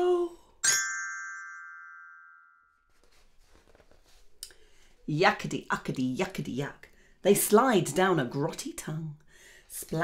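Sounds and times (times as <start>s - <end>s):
glockenspiel bar ringing: 0.6s - 2.8s.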